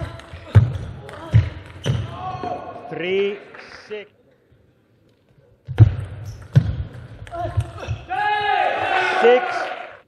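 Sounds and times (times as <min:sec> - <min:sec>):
player yelling: 0:07.8 - 0:09.8.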